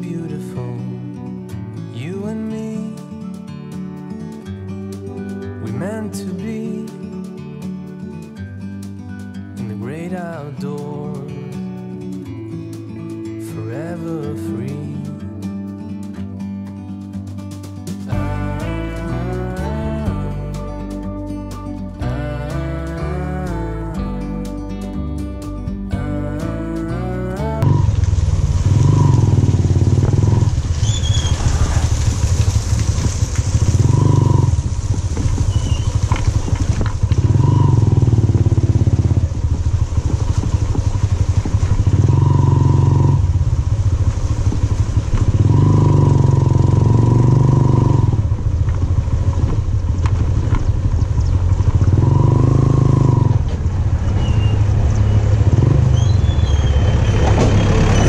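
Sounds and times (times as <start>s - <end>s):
motorcycle engine revving: 27.5s - 58.0s.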